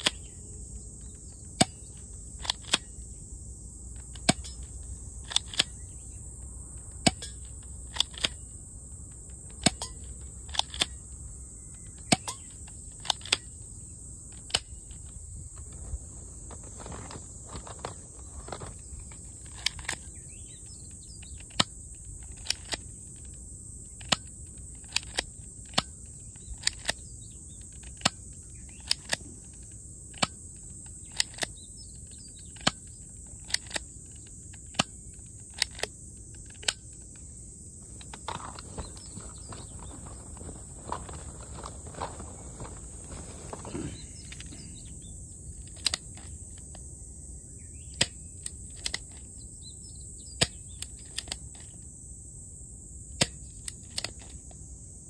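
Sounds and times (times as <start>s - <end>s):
high insect buzz: 0.0s - 55.0s.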